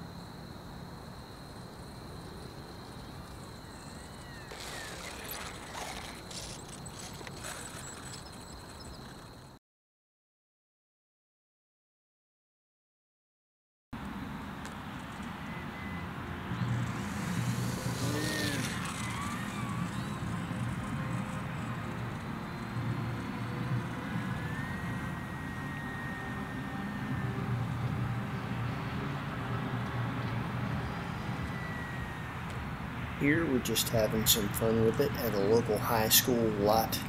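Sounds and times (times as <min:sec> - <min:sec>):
low outdoor background noise: 0:00.0 - 0:09.6, 0:14.0 - 0:37.0
electric motor and propeller whining: 0:02.2 - 0:09.5, 0:14.6 - 0:36.9.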